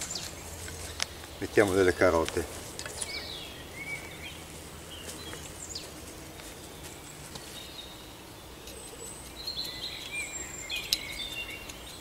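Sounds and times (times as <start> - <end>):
low outdoor background noise: 0.0 - 12.0
small birds chirping: 0.0 - 12.0
soft ticks: 10.8 - 12.0.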